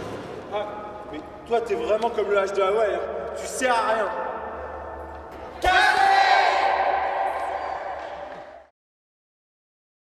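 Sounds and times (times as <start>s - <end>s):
group shout echoing: 5.4s - 8.7s.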